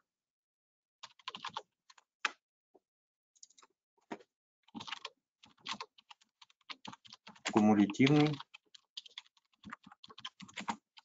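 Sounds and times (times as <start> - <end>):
typing on computer keyboard: 1.0 - 2.0, 4.7 - 11.0.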